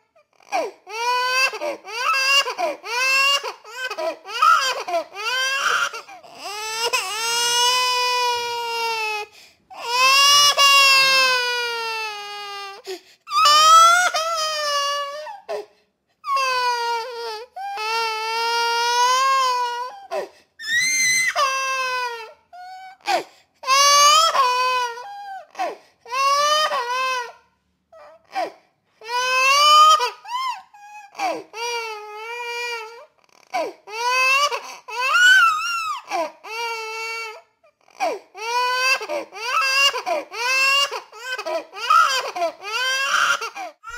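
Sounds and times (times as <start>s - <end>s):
baby crying: 0.0s - 43.9s.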